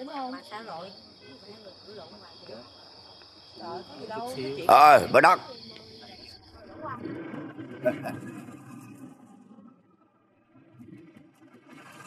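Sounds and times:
crickets chirring: 0.0s - 9.8s
chatter of voices: 3.5s - 8.5s.

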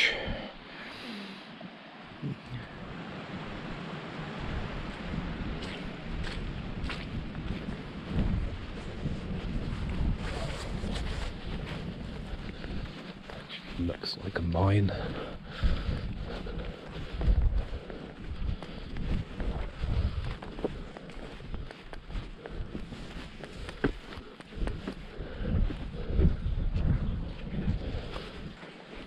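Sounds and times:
wind buffeting microphone: 1.8s - 29.0s
footsteps through grass: 4.9s - 29.0s.

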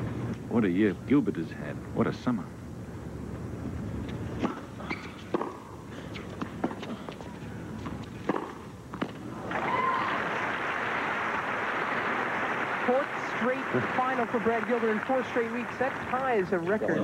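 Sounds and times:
tennis racquets hitting ball: 4.1s - 9.4s
stadium crowd applause: 9.4s - 16.6s.

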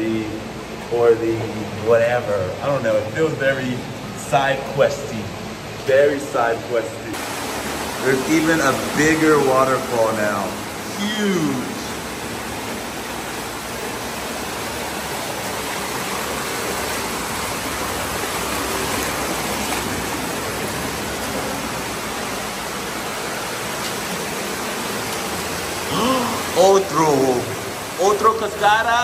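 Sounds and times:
waterfall splashing over rocks: 7.1s - 29.0s.

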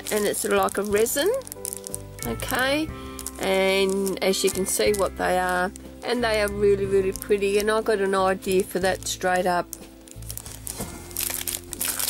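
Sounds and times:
cellophane packaging crinkling: 0.0s - 12.0s
soft background music: 0.0s - 12.0s.

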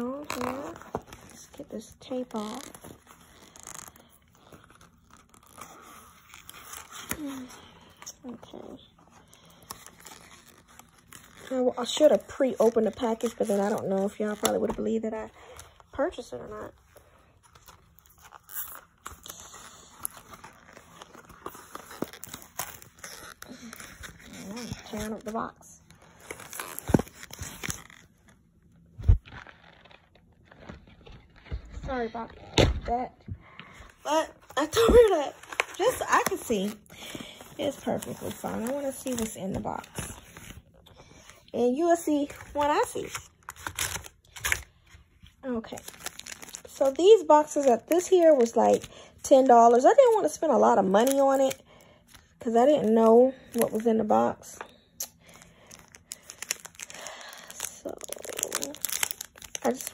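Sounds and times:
tape peeling off cardboard: 2.1s - 7.4s, 17.5s - 25.3s
paperboard box ripping: 45.8s - 47.0s, 57.6s - 59.9s.

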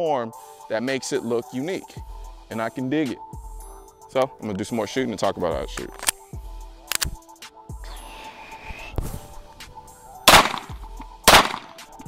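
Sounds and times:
pistol shot: 10.2s - 11.9s.

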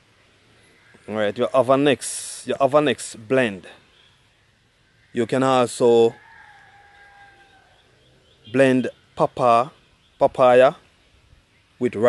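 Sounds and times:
faint rooster crowing: 5.8s - 8.1s.

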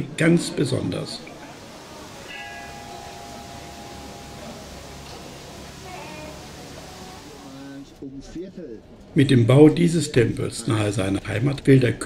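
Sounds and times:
bell ringing: 2.2s - 7.2s.

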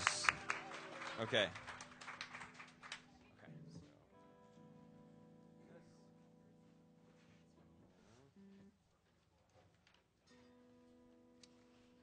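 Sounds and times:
faint electric guitar notes: 2.6s - 8.7s.

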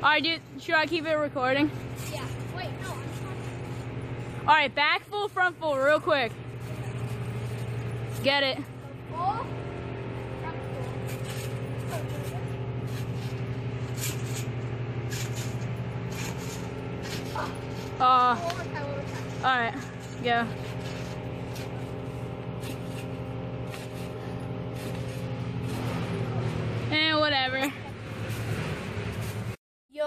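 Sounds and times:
low mechanical hum: 0.0s - 30.0s.

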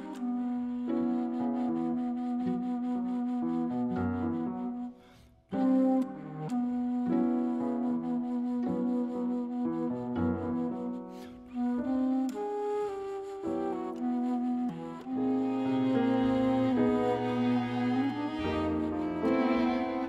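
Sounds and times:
bass flute jazz melody: 0.0s - 20.0s
piano: 0.0s - 20.0s
strings: 14.7s - 20.0s.

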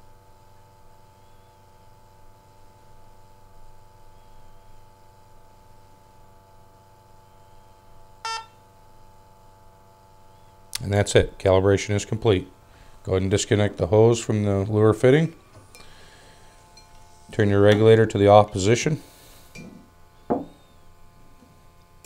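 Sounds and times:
faint steady hum: 0.0s - 22.0s
short electronic beep: 8.2s - 8.6s.

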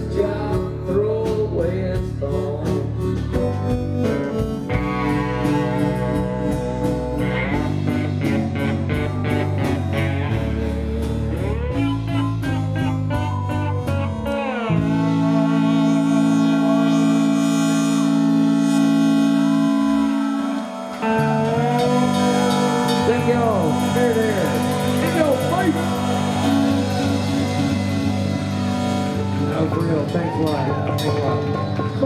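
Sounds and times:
drums: 0.0s - 32.0s
electric bass: 0.0s - 32.0s
electric guitar: 0.0s - 32.0s.

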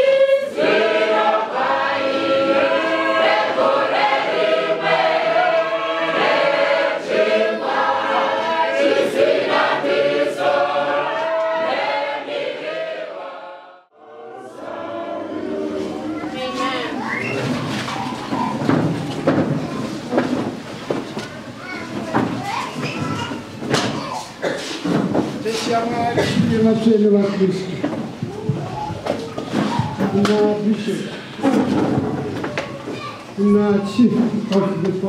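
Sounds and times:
choir singing a hymn: 0.0s - 17.0s.

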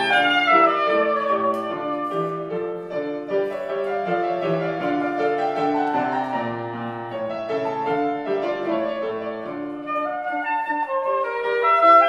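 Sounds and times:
piano accompaniment: 0.0s - 12.0s
saxophone melody: 0.0s - 12.0s.

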